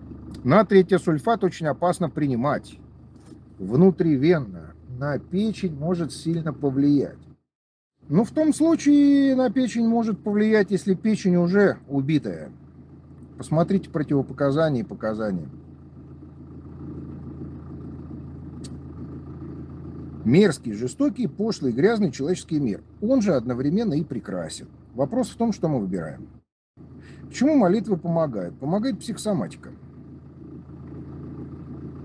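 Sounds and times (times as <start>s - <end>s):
low rumble with constant hum: 0.0s - 7.4s, 8.0s - 32.0s.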